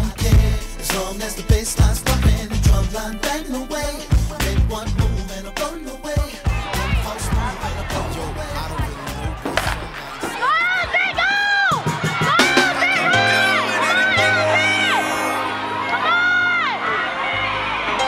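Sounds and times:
hip-hop music over loudspeakers: 0.0s - 16.8s
spectators cheering and shouting: 4.4s - 18.0s
high-pitched yells: 10.3s - 18.0s.

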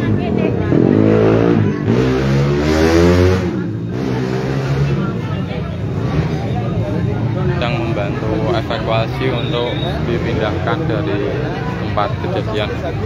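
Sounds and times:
car engine revving: 0.0s - 6.9s
crowd voices: 0.0s - 13.0s.

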